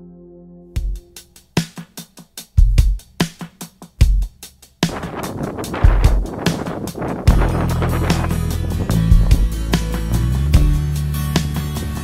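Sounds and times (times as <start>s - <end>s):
drum-kit beat: 0.8s - 12.0s
heavy bass hit: 4.9s - 11.2s.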